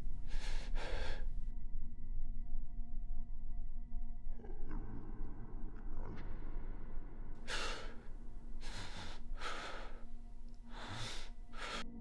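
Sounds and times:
dark ambient drone: 0.0s - 12.0s
loud airy breaths: 7.4s - 12.0s.

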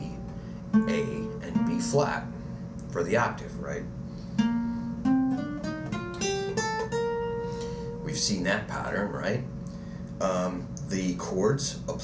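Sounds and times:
acoustic guitar plucking scale: 0.0s - 2.3s, 4.3s - 8.6s.

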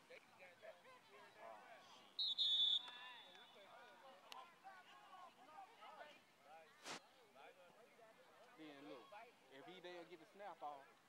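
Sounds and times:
faint voices talking: 0.0s - 11.0s
referee's whistle blast: 2.2s - 3.3s.

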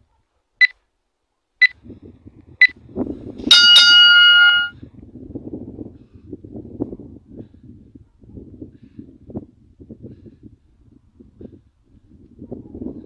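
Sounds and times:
bell tone ringing: 3.5s - 4.7s
short electronic beeps: 3.5s - 4.7s.

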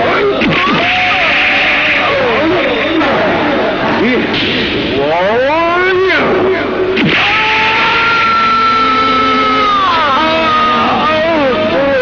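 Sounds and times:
man screaming: 0.4s - 2.4s, 7.0s - 12.0s.

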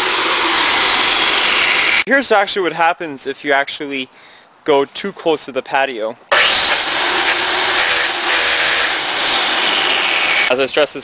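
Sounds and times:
lawn edger blade grinding concrete: 0.0s - 2.0s, 6.3s - 10.5s.

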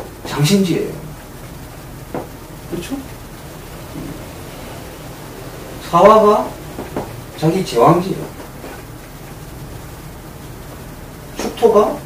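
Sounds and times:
steady background hiss: 0.0s - 12.0s
man speaking: 5.6s - 6.7s.

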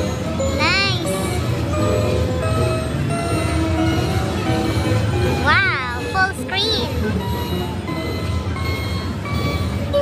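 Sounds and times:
slot machine electronic tones: 0.0s - 10.0s.

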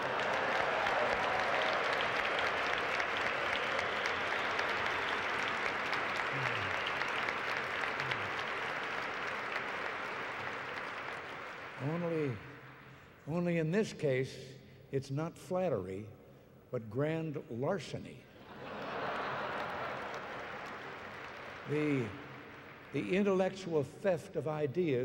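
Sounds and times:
large audience applauding: 0.0s - 13.0s, 18.5s - 23.6s.

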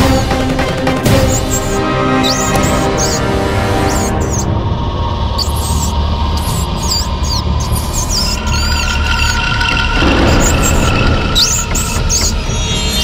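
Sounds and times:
background music with low drone: 0.0s - 13.0s
mouse squeaking: 1.0s - 4.5s, 5.3s - 13.0s.

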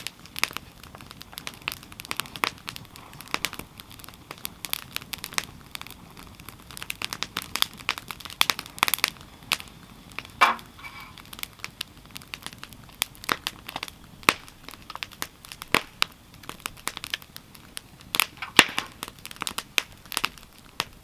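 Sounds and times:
firewood crackling in fire pit: 0.0s - 21.0s.

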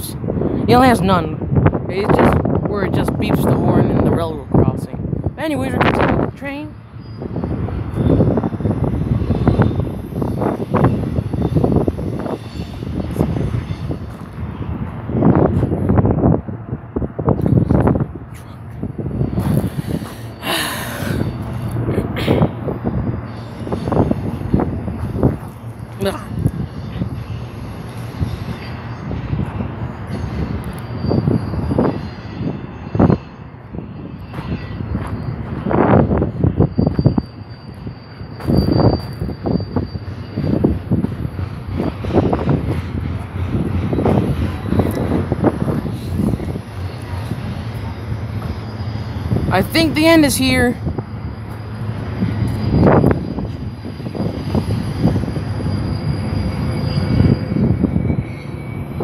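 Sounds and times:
freight train wheels rumbling: 0.0s - 59.0s
loud surges of noise: 0.0s - 59.0s.

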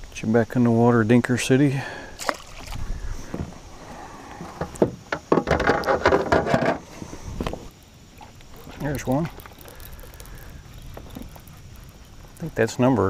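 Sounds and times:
rustling and scraping: 2.6s - 12.4s
knocks against plastic hull: 4.5s - 6.8s.

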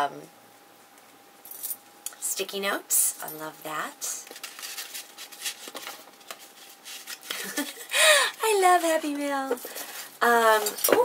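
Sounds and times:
metal bracelets clinking: 1.4s - 1.8s.

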